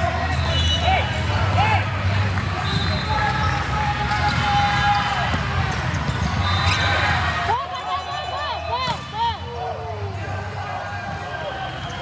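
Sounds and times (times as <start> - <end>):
hum of large hall: 0.0 - 12.0
sneakers squeaking on court: 5.3 - 7.3.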